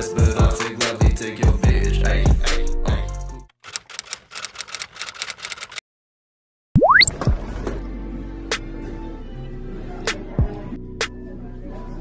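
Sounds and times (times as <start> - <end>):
music: 0.0 - 3.5, 7.1 - 12.0
typewriter key clicks: 3.6 - 5.8.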